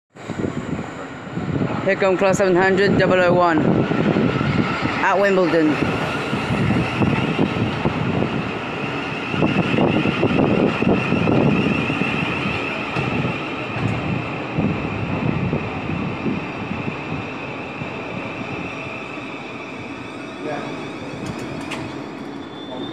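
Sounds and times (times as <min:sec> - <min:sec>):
electric train high whine: 0:00.1 - 0:22.9.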